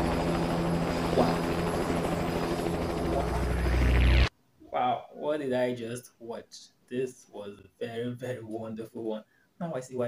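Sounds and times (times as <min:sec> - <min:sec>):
low droning hum with fluttering pulse: 0:00.0 - 0:04.3.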